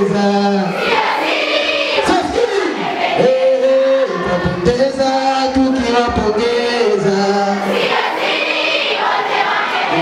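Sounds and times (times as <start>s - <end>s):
live stage music: 0.0s - 10.0s
choir-like group voices: 0.2s - 4.6s, 6.7s - 10.0s
male lead vocal: 2.0s - 7.8s.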